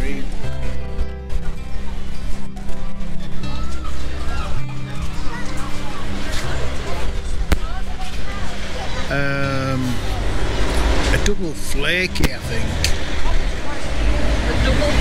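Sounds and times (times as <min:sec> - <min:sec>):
low rumble of traffic: 0:00.0 - 0:15.0.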